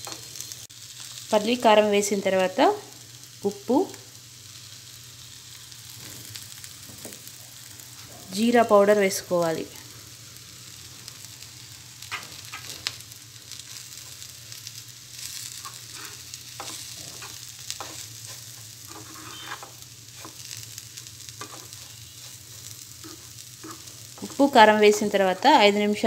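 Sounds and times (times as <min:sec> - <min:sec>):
beans sizzling in a pan: 0:00.0 - 0:26.0
spatula scraping a pan: 0:15.2 - 0:25.4.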